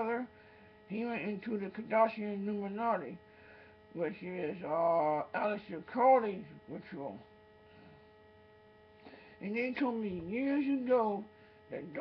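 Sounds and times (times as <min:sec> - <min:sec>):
faint electrical hum: 0:00.0 - 0:12.0
person speaking: 0:00.9 - 0:03.2, 0:03.9 - 0:07.3, 0:09.4 - 0:12.0.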